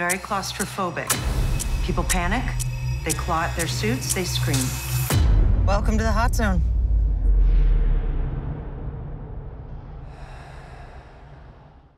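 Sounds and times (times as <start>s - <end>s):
deep low rumble: 5.2s - 11.9s.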